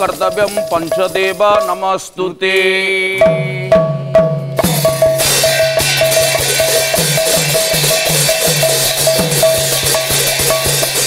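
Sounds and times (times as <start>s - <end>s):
brass cymbals clashing: 0.0s - 2.2s, 3.2s - 11.0s.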